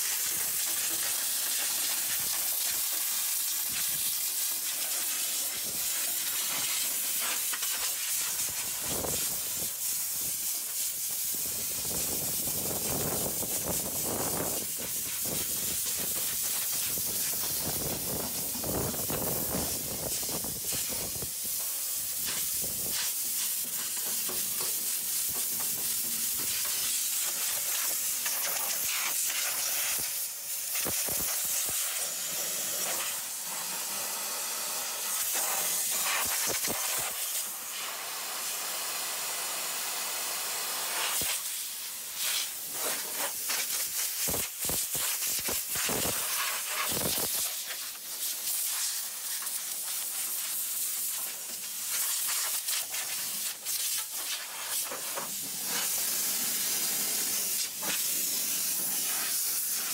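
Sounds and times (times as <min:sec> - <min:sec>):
compressed air hissing from air gun: 0:00.0 - 0:59.9.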